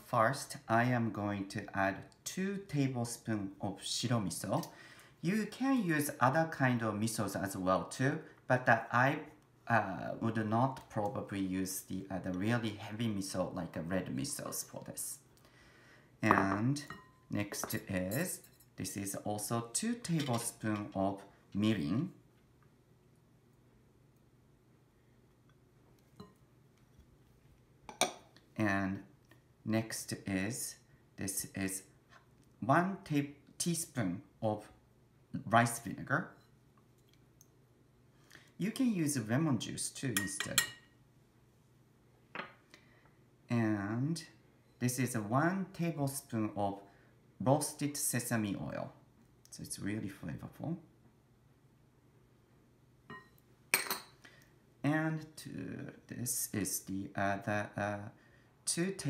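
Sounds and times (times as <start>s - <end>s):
glass bowls clinking: 16.2s - 18.7s, 53.1s - 54.2s.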